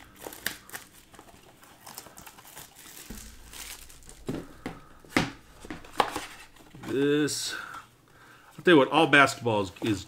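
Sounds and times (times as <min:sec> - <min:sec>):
plastic shrink-wrap crinkling: 0:00.0 - 0:06.8.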